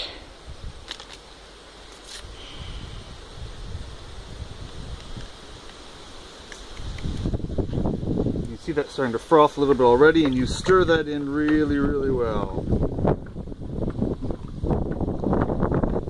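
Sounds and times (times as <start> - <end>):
wind noise on microphone: 0.0 - 1.1, 2.1 - 16.0.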